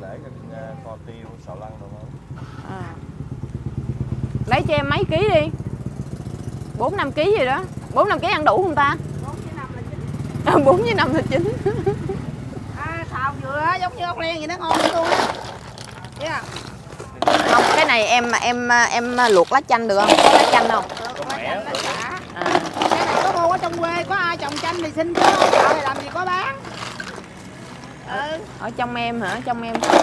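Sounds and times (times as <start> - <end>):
motorbike engine running: 2.2 - 13.1, 14.6 - 28.1
woman speaking: 10.5 - 11.6, 17.3 - 21.1, 21.7 - 26.6, 28.1 - 30.0
snails clattering against plastic: 14.6 - 28.0, 29.2 - 30.0.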